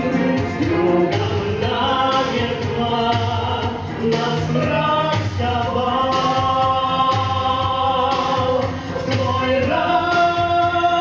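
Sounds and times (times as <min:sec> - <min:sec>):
instrumental accompaniment: 0:00.0 - 0:11.0
low beat: 0:00.0 - 0:11.0
man and woman singing duet: 0:00.0 - 0:11.0.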